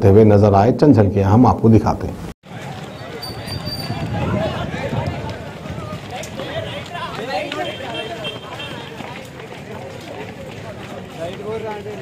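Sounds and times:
street noise: 0.0s - 12.0s
young people talking and calling: 2.4s - 12.0s.

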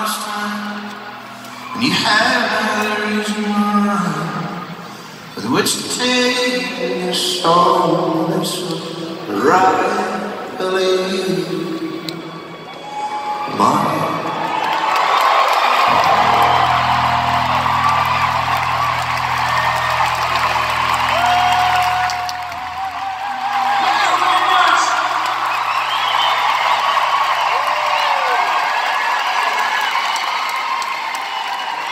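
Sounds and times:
crowd cheering and whistling: 0.4s - 5.4s, 11.6s - 31.9s
band holding low chord: 15.8s - 28.0s.

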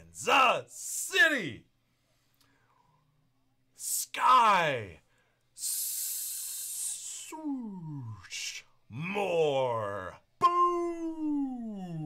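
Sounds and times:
man announcing with drawn-out voice: 0.0s - 1.7s, 3.8s - 5.0s, 6.8s - 12.0s.

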